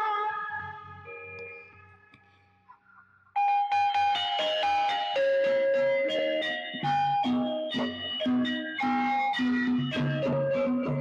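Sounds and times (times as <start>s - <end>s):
gamelan music: 5.1s - 11.0s.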